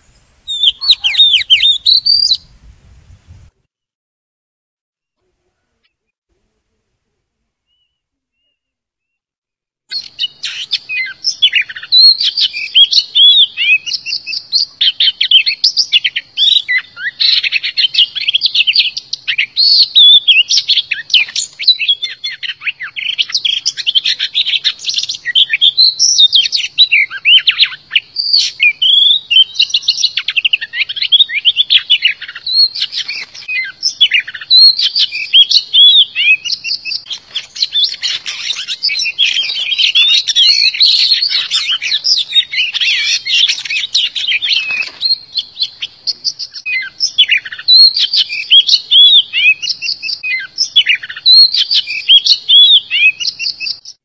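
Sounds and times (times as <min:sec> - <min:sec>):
bird singing whistled phrases: 0:00.4 - 0:02.5, 0:07.6 - 0:09.2, 0:09.9 - 0:54.0.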